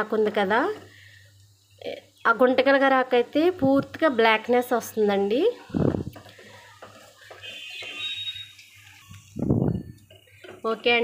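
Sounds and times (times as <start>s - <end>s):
paste sizzling in oil: 0.0s - 9.4s
spoon stirring in pot: 6.0s - 11.0s.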